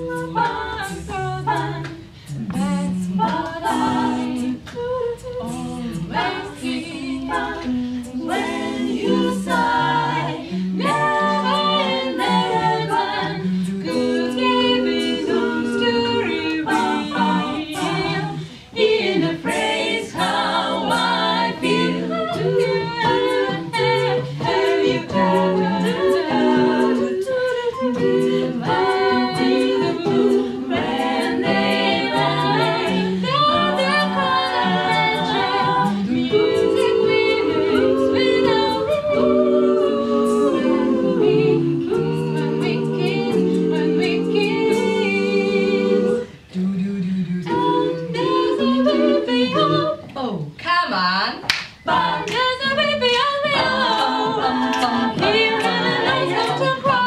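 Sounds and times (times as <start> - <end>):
women singing in harmony: 0.0 - 57.0.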